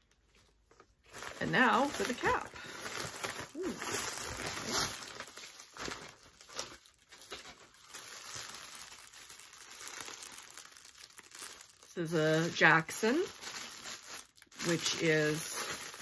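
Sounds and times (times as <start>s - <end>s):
plastic packaging crinkling: 0.0s - 16.0s.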